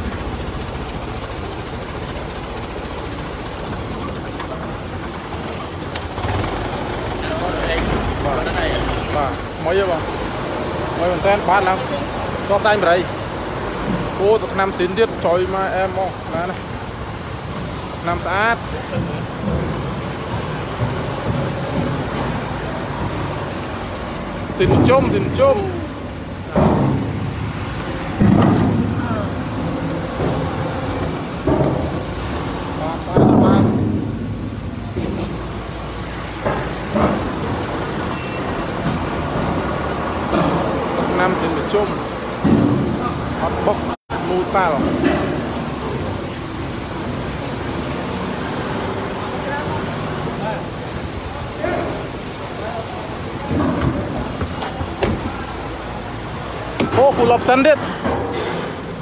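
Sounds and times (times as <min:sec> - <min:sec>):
vehicle engine idling: 0:00.0 - 0:44.0.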